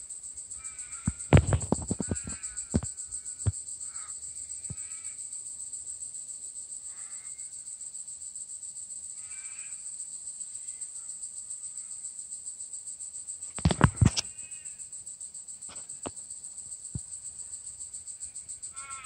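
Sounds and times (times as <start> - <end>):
high-pitched insect trill: 0.0 - 19.0
faint short pitched calls: 0.6 - 3.0, 13.6 - 14.8.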